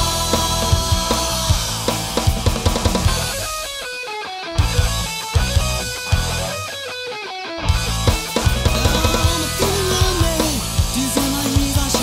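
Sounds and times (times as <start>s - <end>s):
pop-rock band music: 0.0s - 12.0s.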